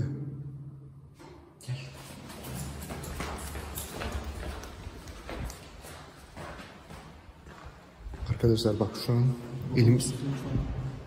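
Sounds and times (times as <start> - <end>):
footsteps on hard floor: 2.0 - 8.4.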